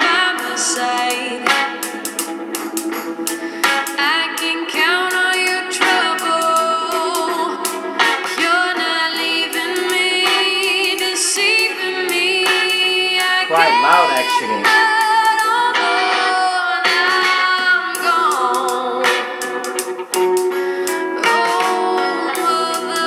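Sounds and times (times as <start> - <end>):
song with singer and guitar: 0.0 - 23.0.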